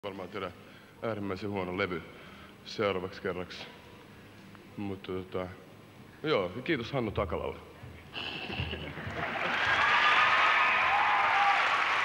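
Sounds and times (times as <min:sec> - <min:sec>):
audience applauding: 0:09.0 - 0:12.0.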